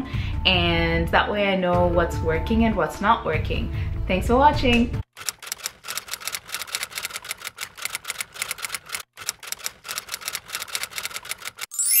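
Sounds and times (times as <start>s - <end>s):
typewriter keys clacking: 5.2s - 11.7s.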